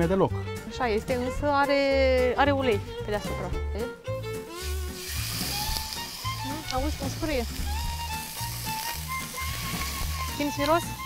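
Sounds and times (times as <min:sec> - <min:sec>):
fish sizzling in frying pan: 0:04.4 - 0:11.0.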